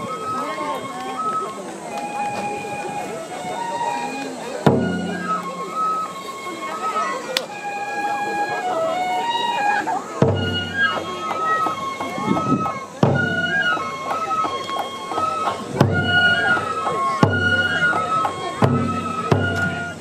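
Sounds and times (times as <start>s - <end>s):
bamboo flute melody: 0.0s - 20.0s
taiko drum beats: 1.7s - 20.0s.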